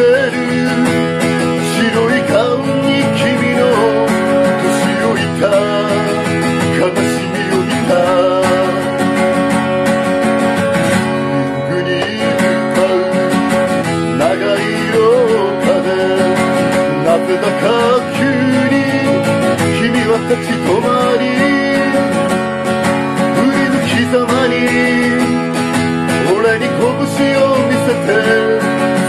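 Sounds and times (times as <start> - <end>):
acoustic guitar strumming: 0.0 - 29.0
man singing: 0.0 - 29.0.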